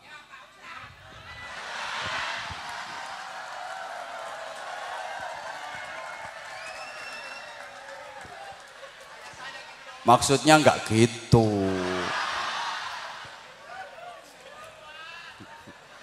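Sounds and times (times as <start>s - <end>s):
large crowd laughing: 1.4s - 3.4s, 11.4s - 13.4s.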